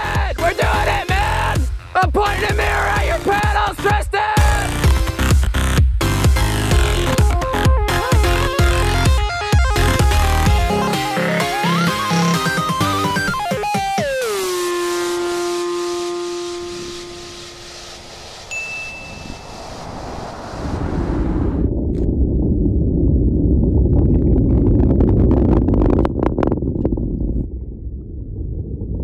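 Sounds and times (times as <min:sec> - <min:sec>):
electronic music: 0:00.0 - 0:19.8
brief high tone: 0:15.0 - 0:20.0
distant rocket launch rumble: 0:16.7 - 0:29.0.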